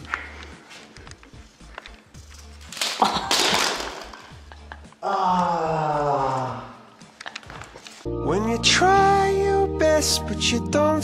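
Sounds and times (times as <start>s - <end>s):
ice cream cones crashing: 2.7s - 4.2s.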